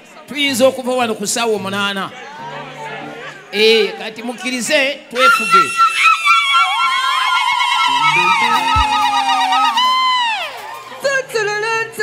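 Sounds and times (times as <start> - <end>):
shrill ululating cries: 5.2 - 10.6
low thump: 8.6 - 9.2.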